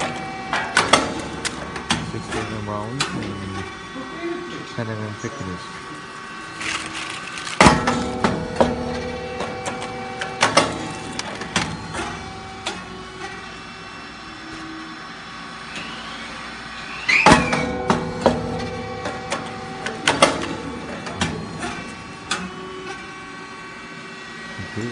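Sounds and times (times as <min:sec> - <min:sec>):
steady machine hum: 0:00.0 - 0:24.9
machine sharp bangs: 0:07.6 - 0:12.9, 0:17.2 - 0:22.5.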